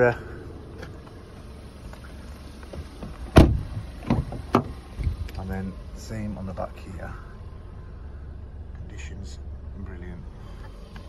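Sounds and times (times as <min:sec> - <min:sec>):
car door shutting thump: 0:02.7 - 0:05.2.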